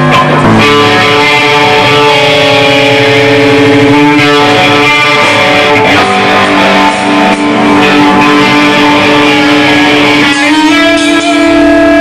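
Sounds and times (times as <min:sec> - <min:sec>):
amplified electric guitars: 0:00.0 - 0:12.0.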